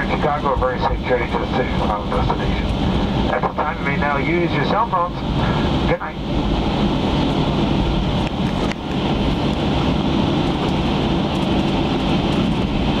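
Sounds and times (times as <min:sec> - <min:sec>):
jet engines idling: 0:00.0 - 0:13.0.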